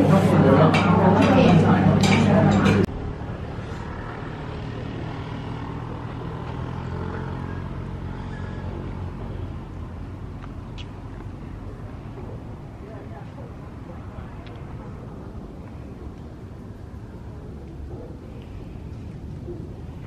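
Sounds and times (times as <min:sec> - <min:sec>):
loud restaurant chatter: 0:00.0 - 0:05.3, 0:11.5 - 0:20.0
low outdoor hum: 0:00.0 - 0:20.0.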